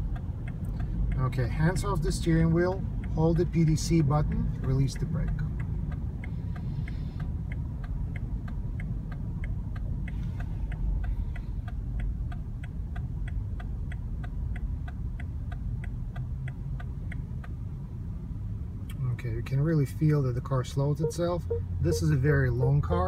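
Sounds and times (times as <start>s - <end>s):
low rumble of car moving: 0.0s - 23.0s
turn signal ticking: 0.0s - 23.0s.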